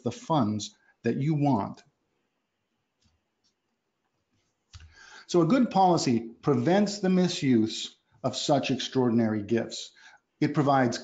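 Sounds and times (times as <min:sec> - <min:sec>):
person speaking: 0:00.0 - 0:01.8, 0:04.8 - 0:11.0
faint breath: 0:04.8 - 0:05.3, 0:09.9 - 0:10.3.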